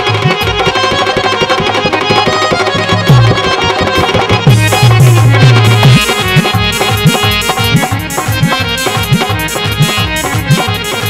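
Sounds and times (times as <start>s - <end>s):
sustained keyboard melody: 0.0s - 11.0s
hand drum booming bass strokes: 4.5s - 7.1s.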